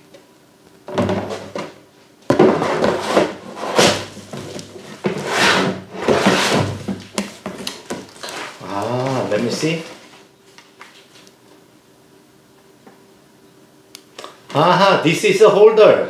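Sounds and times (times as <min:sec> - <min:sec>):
plastic scraping on cardboard: 0:02.4 - 0:10.2.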